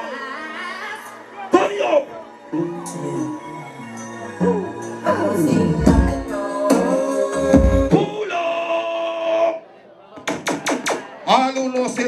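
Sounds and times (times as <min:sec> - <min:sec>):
party music with sung note: 0:01.6 - 0:08.6
quick sharp hits: 0:10.2 - 0:11.2.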